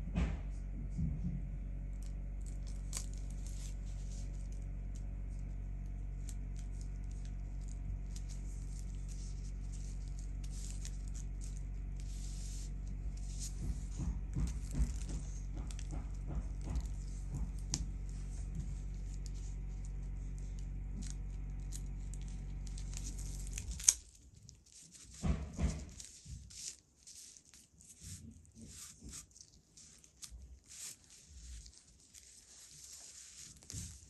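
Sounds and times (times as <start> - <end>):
steady low hum: 0.0 - 34.0
tissue paper crinkling: 1.8 - 34.0.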